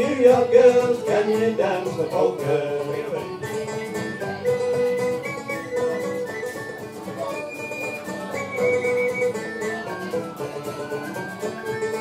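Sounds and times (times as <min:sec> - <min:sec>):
banjo: 0:00.0 - 0:12.0
fiddle: 0:00.0 - 0:12.0
strummed acoustic guitar: 0:00.0 - 0:12.0
tin whistle melody: 0:03.5 - 0:12.0.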